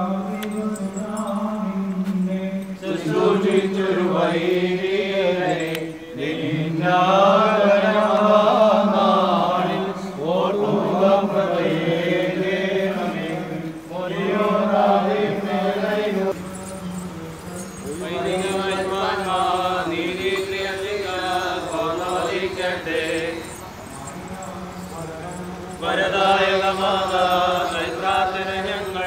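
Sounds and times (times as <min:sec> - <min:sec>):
voices chanting: 0:00.0 - 0:29.0.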